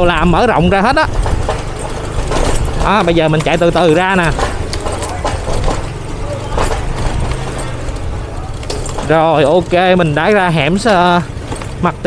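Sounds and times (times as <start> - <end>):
motorbike engine hum: 0.0 - 12.0
rumbling road noise: 0.0 - 12.0.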